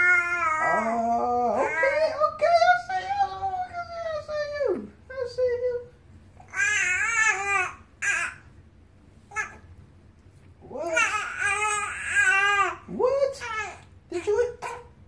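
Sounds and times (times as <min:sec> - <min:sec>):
baby babbling: 0:00.0 - 0:02.0, 0:06.4 - 0:08.5, 0:09.3 - 0:09.6, 0:10.7 - 0:13.8.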